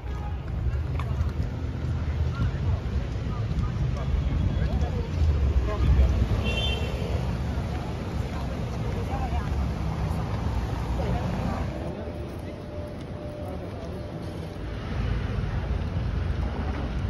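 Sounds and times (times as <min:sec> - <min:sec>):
traffic rumble: 0:00.0 - 0:17.0
voices of passers-by: 0:00.0 - 0:17.0.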